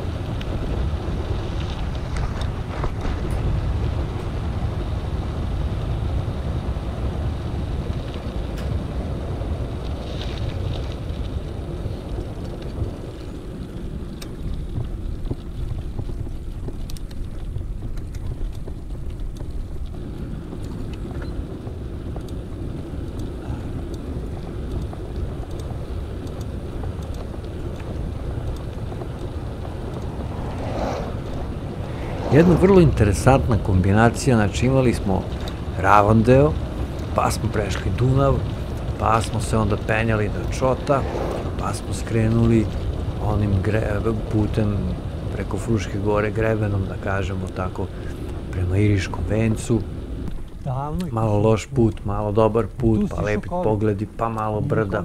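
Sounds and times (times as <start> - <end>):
bike tyre rumble: 0.0 - 55.0
wind buffeting microphone: 0.0 - 55.0
pedal clicking: 10.1 - 43.2.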